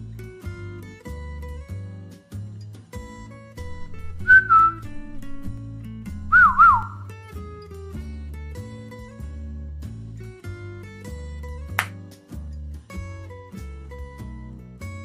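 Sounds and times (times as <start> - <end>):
acoustic guitar music: 0.0 - 15.0
person whistling: 3.8 - 5.6, 6.3 - 7.1.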